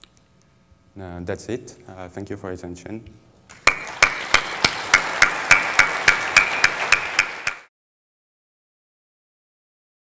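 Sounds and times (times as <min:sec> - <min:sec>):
audience applauding: 0:03.5 - 0:07.7.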